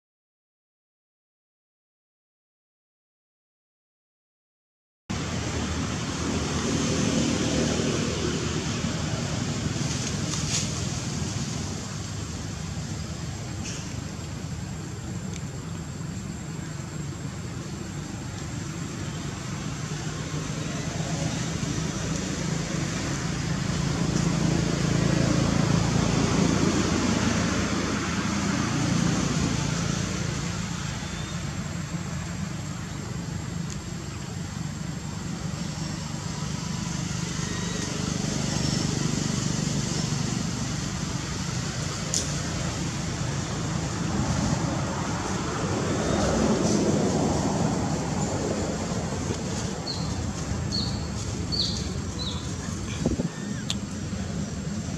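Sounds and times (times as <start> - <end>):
outdoor rumble and hiss: 5.1 - 54.9.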